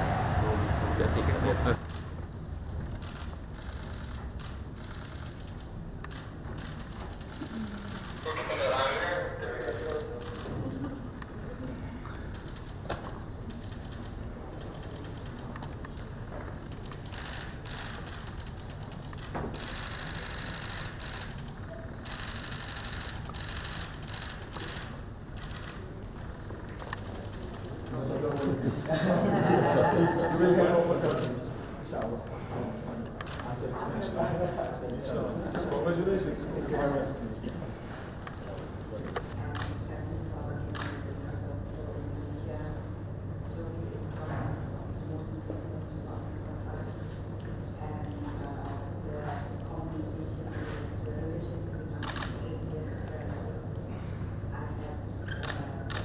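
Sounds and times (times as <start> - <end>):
murmur of voices: 6.6 - 12.4, 22.0 - 56.0
camera shutters clicking: 12.4 - 28.5, 40.7 - 41.0, 52.0 - 52.4, 55.4 - 56.0.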